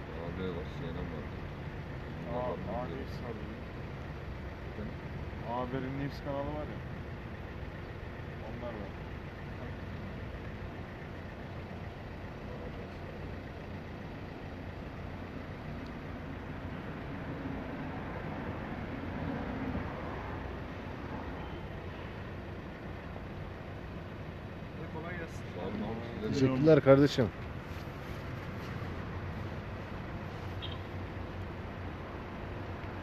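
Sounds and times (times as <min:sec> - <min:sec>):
low traffic rumble: 0:00.0 - 0:33.0.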